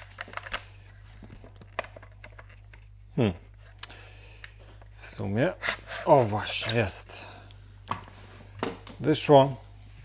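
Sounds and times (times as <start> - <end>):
packaging rustling and clicking: 0.0 - 2.9.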